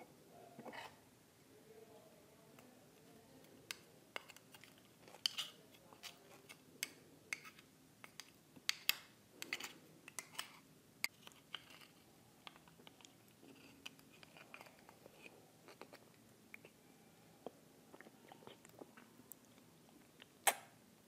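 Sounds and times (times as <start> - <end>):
metal spoon scraping oyster shell: 3.7 - 8.2, 9.4 - 12.0.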